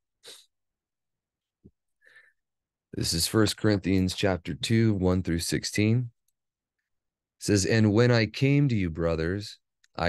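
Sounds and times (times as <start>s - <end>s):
short breath: 2.0s - 2.4s.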